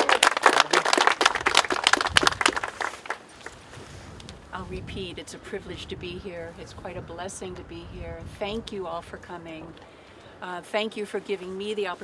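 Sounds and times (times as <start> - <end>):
people applauding: 0.0 - 3.6.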